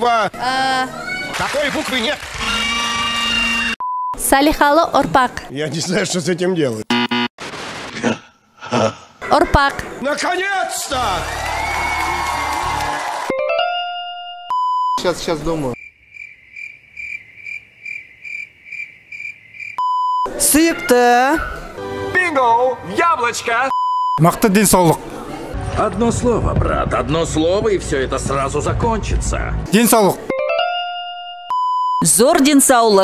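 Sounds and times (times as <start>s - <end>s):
game show buzzer tone: 6.9s - 7.3s
test tone beep: 6.9s - 7.3s, 14.2s - 15.0s, 19.8s - 20.3s, 31.0s - 32.1s
crickets chirping: 15.8s - 20.3s.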